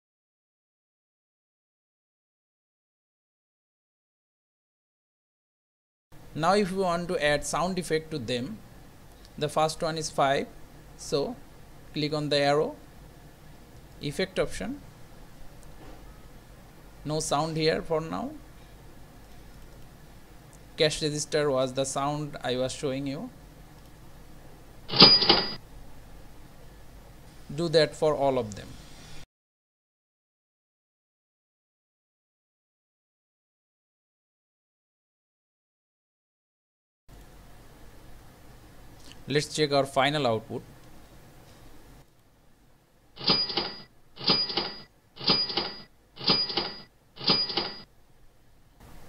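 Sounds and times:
bright bell ring: 24.9 - 25.6, 43.2 - 47.8
cash register sound effect: 24.9 - 25.6, 43.2 - 47.9.

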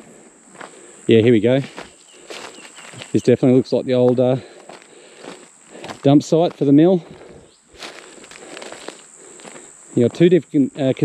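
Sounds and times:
footsteps on sandy ground: 0.0 - 11.0
high-pitched insect buzz: 0.0 - 11.0.

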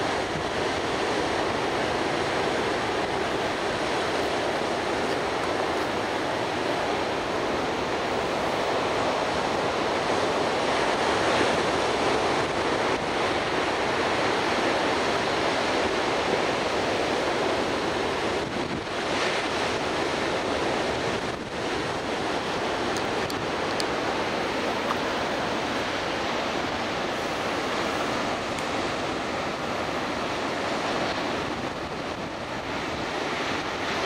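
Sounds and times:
surf breaking on beach: 0.0 - 34.0
wind on microphone: 0.0 - 34.0.

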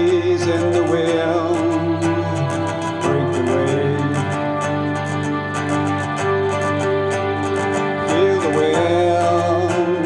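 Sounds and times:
acoustic guitar: 0.0 - 10.0
keyboard playing: 0.0 - 10.0.

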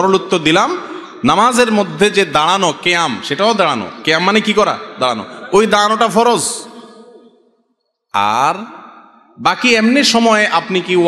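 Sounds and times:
man speaking: 0.0 - 7.2, 8.1 - 11.0.

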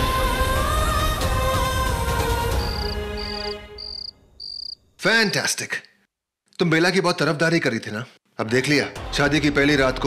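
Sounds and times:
background music: 0.0 - 4.4, 8.4 - 10.0
crickets chirping: 2.5 - 5.0.

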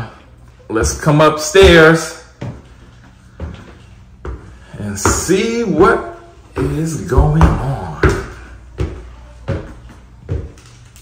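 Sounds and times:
footsteps on hard stairs: 0.6 - 11.0.

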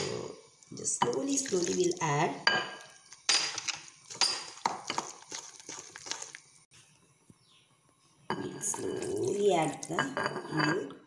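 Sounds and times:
wooden spoon stirring batter: 4.1 - 6.5.

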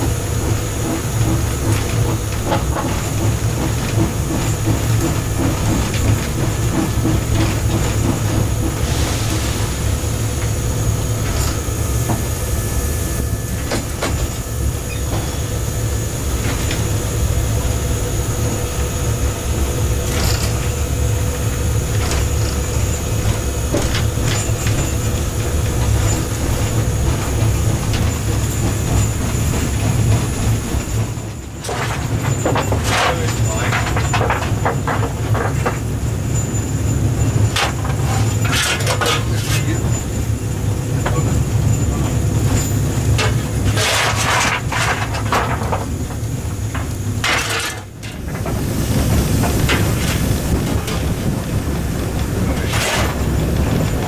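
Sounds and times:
steam hissing: 0.0 - 30.8, 48.4 - 54.0
heavy locomotive rumble: 0.0 - 54.0
knocks and clanks: 21.9 - 35.9, 37.4 - 40.1, 41.0 - 54.0.

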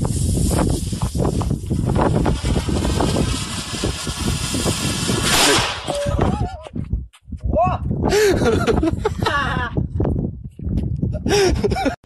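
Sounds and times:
rough rushing noise: 0.0 - 6.4.

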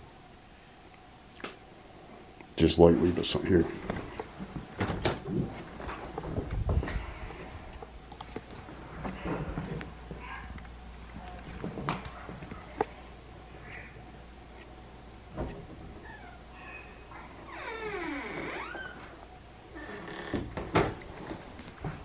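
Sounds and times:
door creaking on hinges: 17.3 - 21.0.

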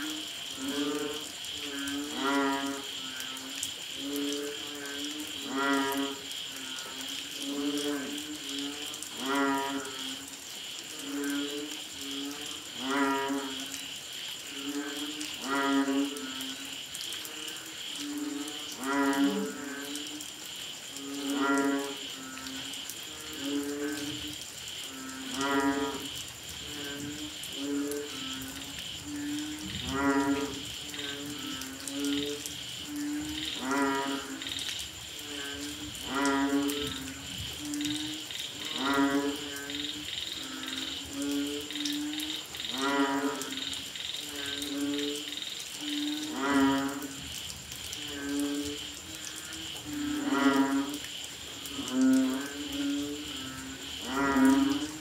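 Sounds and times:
frogs calling: 0.0 - 55.0.

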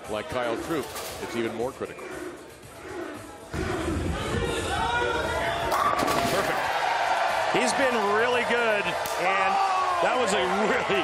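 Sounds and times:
crowd yelling: 2.9 - 11.0.

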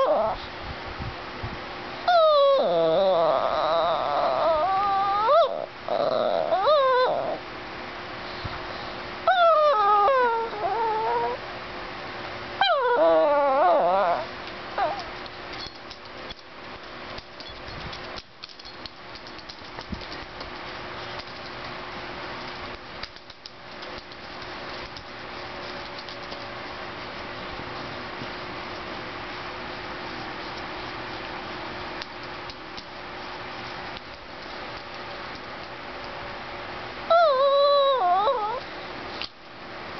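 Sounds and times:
dog whining: 0.0 - 0.5, 2.0 - 7.5, 9.2 - 11.5, 12.6 - 15.8, 37.1 - 38.8.

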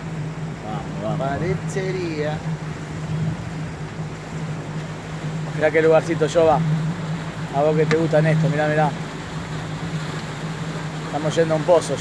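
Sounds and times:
outboard motor humming: 0.0 - 12.0
water rushing: 0.0 - 12.0
wind: 0.0 - 12.0.

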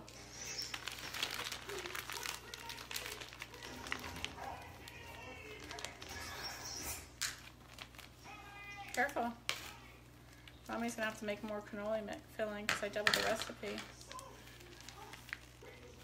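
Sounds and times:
plastic bag crinkling: 0.0 - 12.2, 12.8 - 16.0.

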